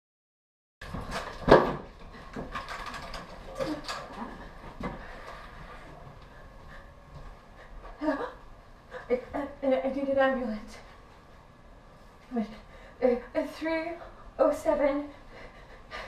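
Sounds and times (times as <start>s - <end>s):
knocks and clatters: 0.8s - 5.0s
faint steady hum: 0.8s - 16.0s.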